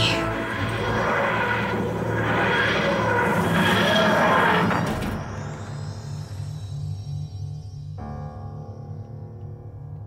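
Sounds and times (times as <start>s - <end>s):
orchestral music: 0.0s - 3.5s.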